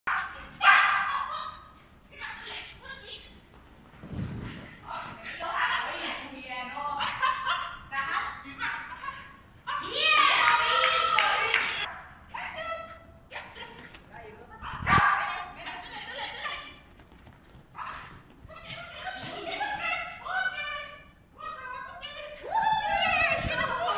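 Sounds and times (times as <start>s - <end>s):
small dog barking with echo: 0.1s - 1.1s.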